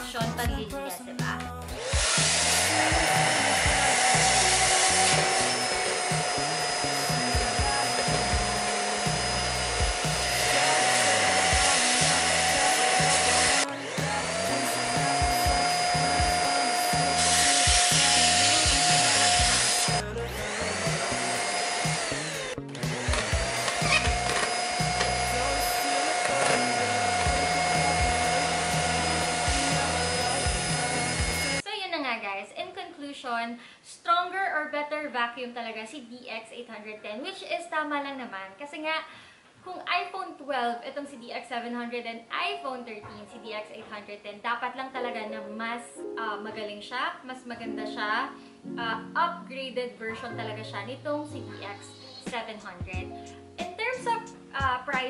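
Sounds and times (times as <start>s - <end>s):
background music with steady beat: 0.0s - 31.7s, 51.3s - 55.0s
vacuum cleaners whining: 1.8s - 31.6s.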